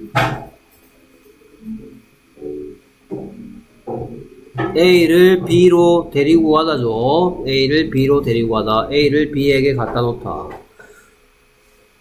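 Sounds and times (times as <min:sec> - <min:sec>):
speech: 0:04.6 - 0:10.6.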